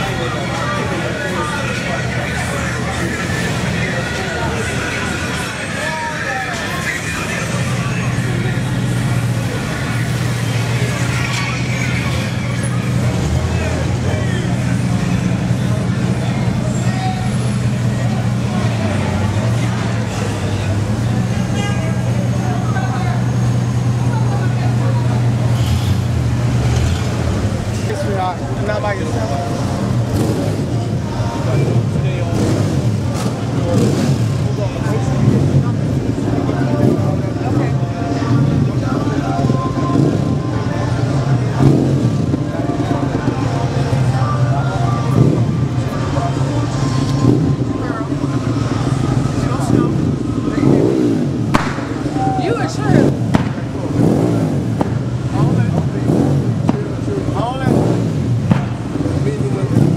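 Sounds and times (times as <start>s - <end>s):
cars moving along street: 0.0s - 59.9s
people chattering: 0.0s - 59.9s.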